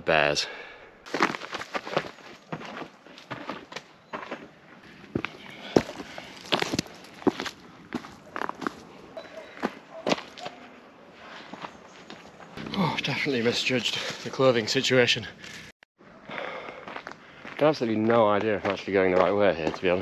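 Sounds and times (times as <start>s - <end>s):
boot footsteps on leafy dirt path: 1.1s - 12.6s, 16.4s - 20.0s.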